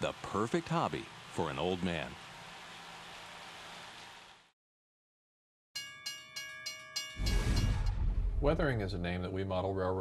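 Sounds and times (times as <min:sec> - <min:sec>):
model train running: 0:00.0 - 0:04.4
railroad crossing bell ringing: 0:05.8 - 0:07.9.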